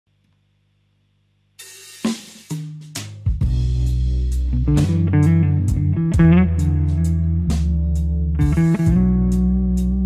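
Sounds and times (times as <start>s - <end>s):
faint amplifier hum: 0.1s - 10.0s
clean electric guitar strum: 4.4s - 10.0s.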